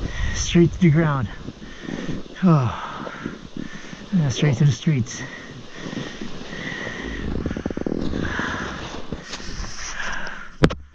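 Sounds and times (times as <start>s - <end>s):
snowboard sliding on snow: 0.0s - 10.2s.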